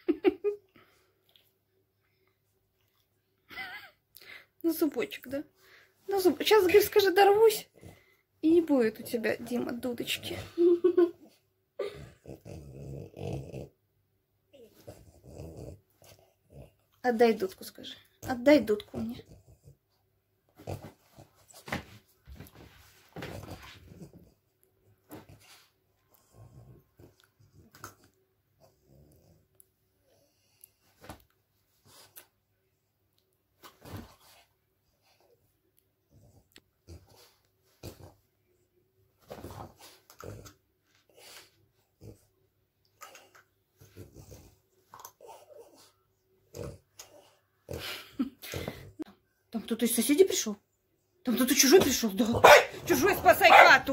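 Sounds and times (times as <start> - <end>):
dog grumbling: 11.8 - 13.8, 14.6 - 15.8
dog snorting and grumbling: 11.8 - 13.8, 14.6 - 16.8, 18.2 - 19.8, 20.6 - 21.8, 39.4 - 40.6, 43.0 - 45.8, 46.4 - 48.8.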